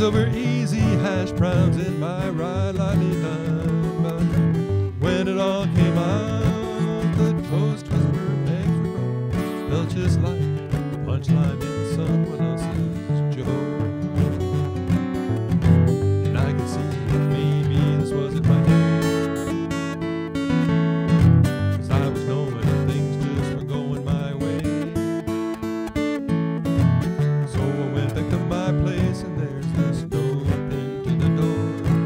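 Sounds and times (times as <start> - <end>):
acoustic guitar strumming: 0.0 - 32.0.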